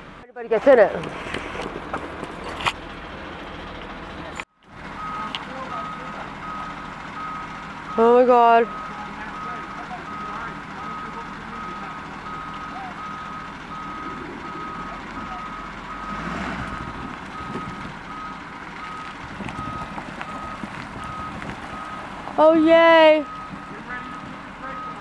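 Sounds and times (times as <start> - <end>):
truck engine running: 0.0 - 25.0
reversing alarm beeping: 5.0 - 25.0.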